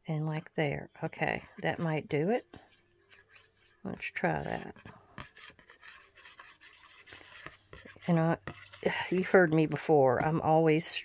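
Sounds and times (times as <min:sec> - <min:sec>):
glue nozzle scratching on cardstock: 0:01.8 - 0:09.0.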